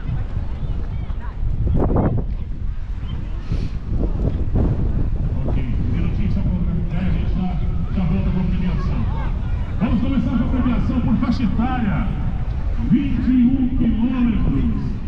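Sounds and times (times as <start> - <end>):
wind rumbling on microphone: 0.0 - 15.0
distant voice over loudspeaker: 5.3 - 15.0.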